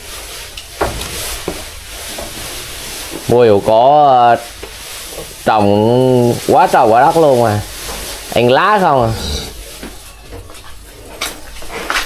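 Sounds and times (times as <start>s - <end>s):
rustling of leaves and fodder: 0.0s - 12.0s
cattle crunching: 4.5s - 12.0s.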